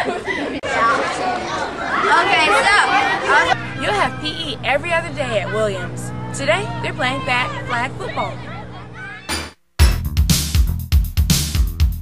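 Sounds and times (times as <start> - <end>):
young voices chatting: 0.0 - 9.3
low steady hum: 3.6 - 9.3.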